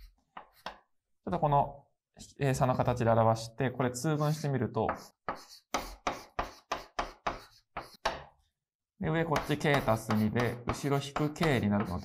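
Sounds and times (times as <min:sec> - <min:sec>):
chalk tapping and scraping: 0:00.0 - 0:00.9, 0:04.0 - 0:08.4, 0:09.3 - 0:12.0.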